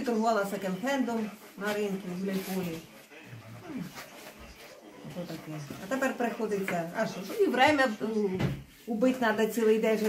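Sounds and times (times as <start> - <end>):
elderly woman talking: 0.0 - 3.2, 5.0 - 10.0.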